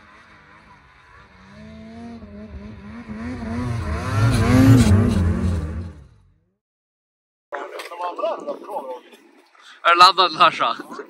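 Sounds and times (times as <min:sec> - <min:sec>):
snowmobile engine revving: 0:00.0 - 0:06.4.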